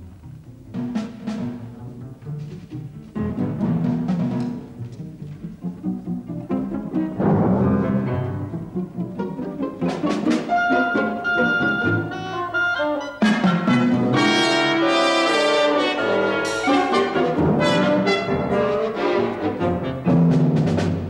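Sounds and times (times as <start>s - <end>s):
symphony orchestra playing: 0.7s - 21.0s
strings bowing: 2.0s - 20.2s.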